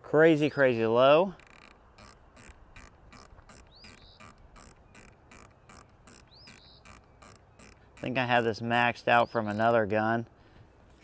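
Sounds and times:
scope turret clicks: 1.4s - 8.2s
bird chirping: 1.4s - 10.0s.

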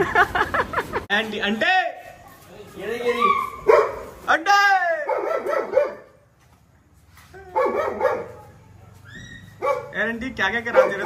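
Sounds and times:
dog whining yips: 3.0s - 3.8s, 9.0s - 9.9s.

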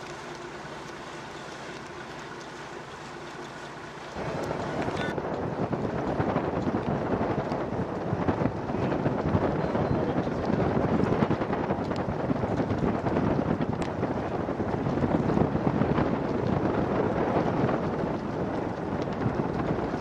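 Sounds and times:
gusty wind buffeting microphone: 4.2s - 20.0s.

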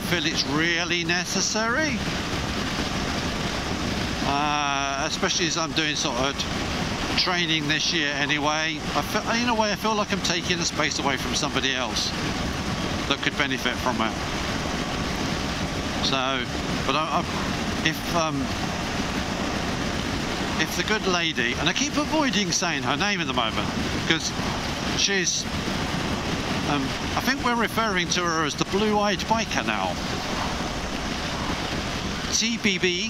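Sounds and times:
motorcycle road noise: 0.0s - 33.0s
wind rush: 0.0s - 33.0s.

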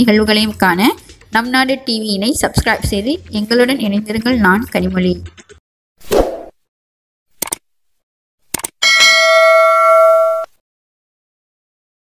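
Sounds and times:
mouse double click: 7.4s - 7.6s, 8.5s - 8.8s
notification bell chime: 8.8s - 10.5s.

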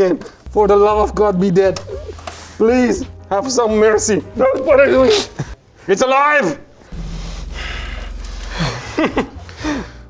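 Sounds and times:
steady low hum: 6.8s - 10.0s
breathy laughter: 8.4s - 10.0s
person laughing: 8.5s - 9.9s.

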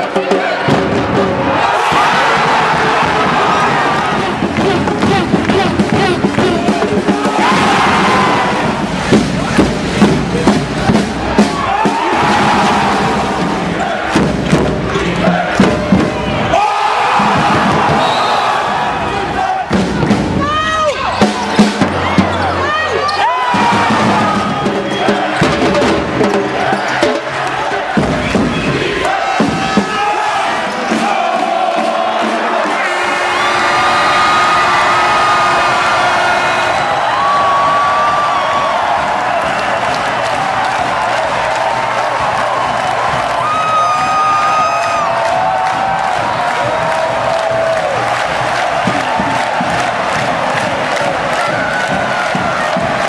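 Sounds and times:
crowd chanting and cheering: 0.0s - 53.0s.

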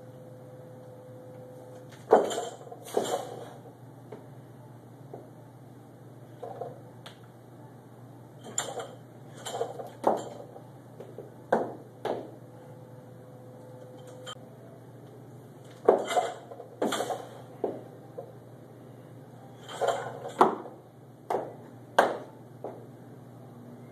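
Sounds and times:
steady low hum: 0.0s - 23.9s
barbell plates clanking: 15.9s - 17.4s.

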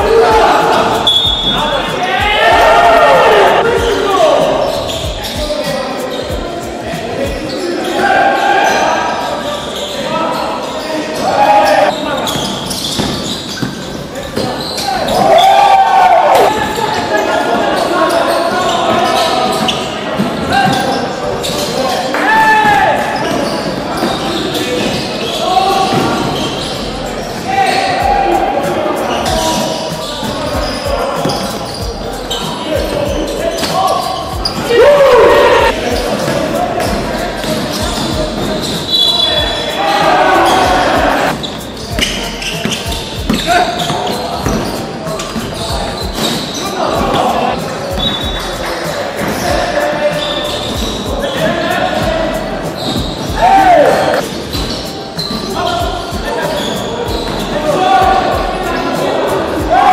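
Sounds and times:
sneakers squeaking on court: 0.0s - 2.0s, 3.5s - 15.4s, 16.4s - 22.1s, 23.0s - 34.8s, 35.6s - 58.6s
players calling out: 0.0s - 59.9s.

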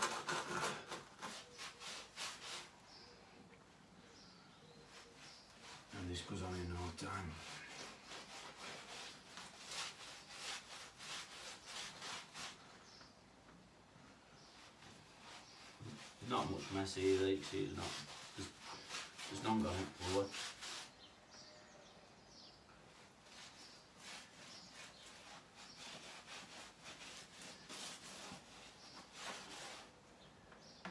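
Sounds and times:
brush scrubbing brickwork: 0.0s - 3.1s, 4.8s - 13.0s, 14.4s - 21.1s, 22.9s - 30.0s.

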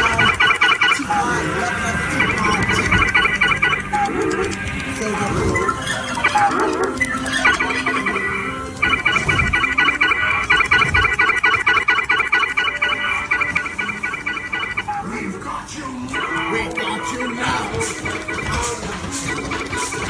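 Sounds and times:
dark-ride soundtrack music: 0.0s - 20.0s
rapid pulsing electronic tone: 0.0s - 20.0s.

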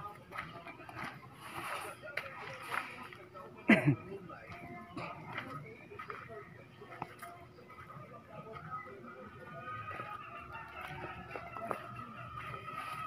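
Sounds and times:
background voices talking: 0.0s - 13.0s.

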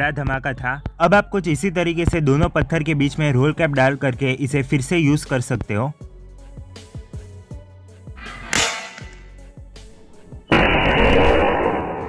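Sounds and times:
background music with steady beat: 0.0s - 10.5s.

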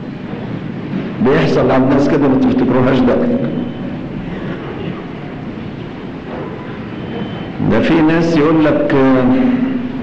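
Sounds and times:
old recording hiss and rumble: 0.0s - 10.0s
man speaking: 1.2s - 3.8s, 7.6s - 10.0s.

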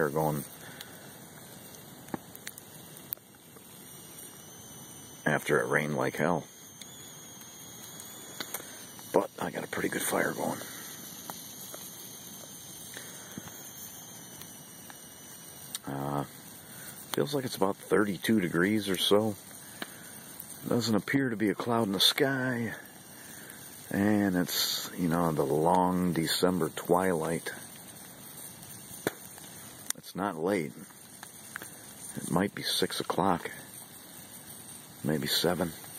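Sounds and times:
campfire burning with low hiss: 0.0s - 35.9s
fire pops and crackles: 0.0s - 35.9s.

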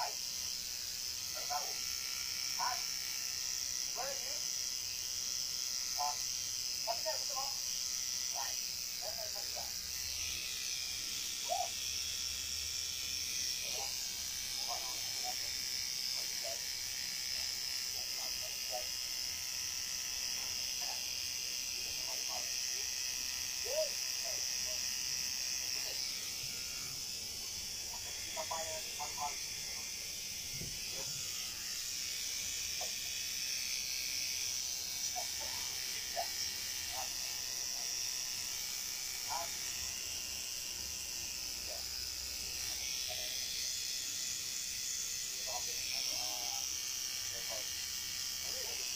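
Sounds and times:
tattoo machine buzzing: 0.0s - 48.9s.

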